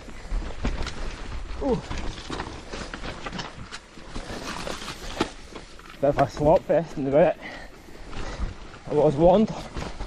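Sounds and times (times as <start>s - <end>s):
bike clicks and rattles: 0.0s - 10.0s
bike tyres on muddy dirt: 0.0s - 10.0s.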